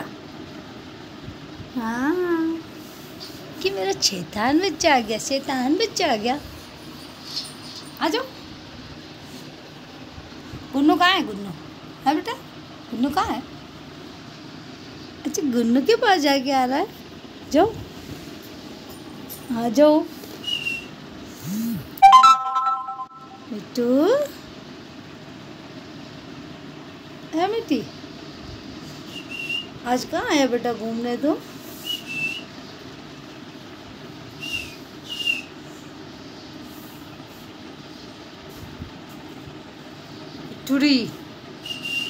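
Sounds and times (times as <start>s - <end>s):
steady background hum: 0.0s - 42.0s
parakeet whistles: 20.4s - 20.9s, 29.1s - 29.7s, 34.4s - 35.6s, 41.6s - 42.0s
short high whistle: 21.5s - 23.4s, 41.6s - 42.0s.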